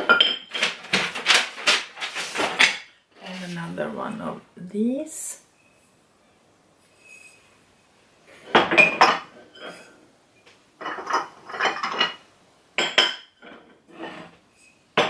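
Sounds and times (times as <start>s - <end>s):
dishes clinking in a box: 0.0s - 1.7s, 8.5s - 9.9s, 10.8s - 12.2s, 12.8s - 13.6s.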